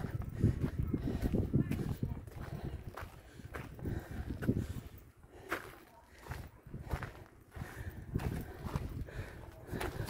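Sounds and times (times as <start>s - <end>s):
wind rumbling on microphone: 0.0s - 5.1s, 6.2s - 10.0s
footsteps on sandy rock path: 0.0s - 10.0s.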